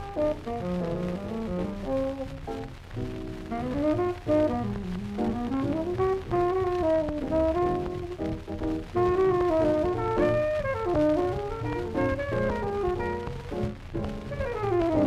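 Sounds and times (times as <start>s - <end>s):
small-group jazz horns in harmony: 0.0s - 2.4s, 3.5s - 13.6s, 14.3s - 15.0s.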